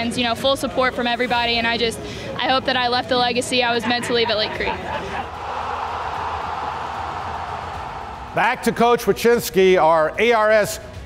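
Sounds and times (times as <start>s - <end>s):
rushing whoosh sound effect: 5.2s - 8.8s.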